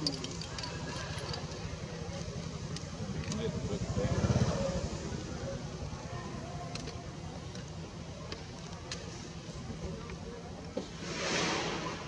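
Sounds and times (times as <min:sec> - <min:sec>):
small engine running: 0:00.0 - 0:06.9
faint voices: 0:00.0 - 0:12.0.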